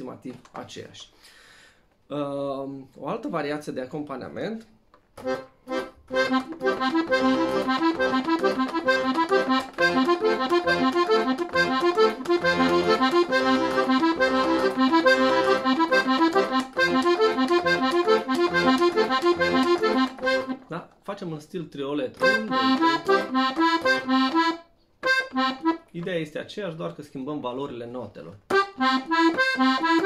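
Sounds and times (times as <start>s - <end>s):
accordion playing arpeggios: 5.2s - 20.8s, 22.2s - 26.0s, 28.5s - 30.0s.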